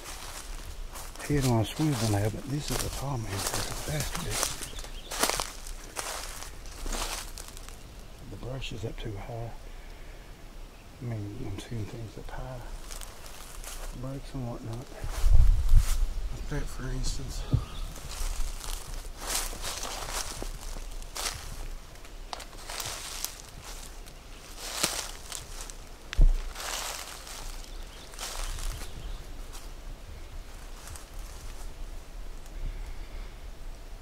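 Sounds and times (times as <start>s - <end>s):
footsteps through dry leaves: 0.0s - 8.1s, 12.4s - 14.2s, 14.8s - 29.8s, 30.4s - 31.8s
brush rustling: 0.0s - 8.9s, 11.4s - 32.6s
heavy thump: 26.2s - 26.5s.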